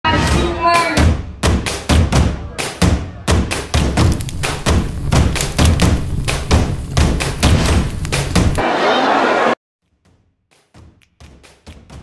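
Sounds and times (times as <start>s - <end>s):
festival drums beaten fast: 1.0s - 8.6s.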